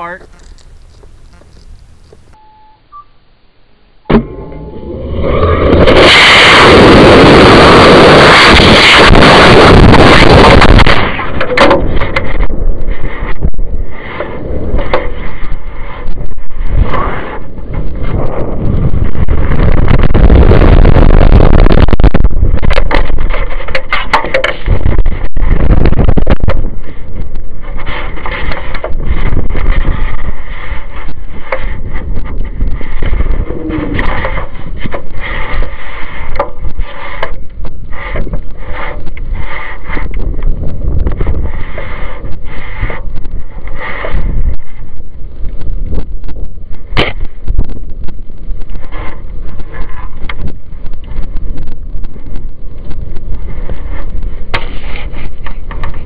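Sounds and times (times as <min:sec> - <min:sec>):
wind buffeting microphone: 0:04.2 - 0:56.0.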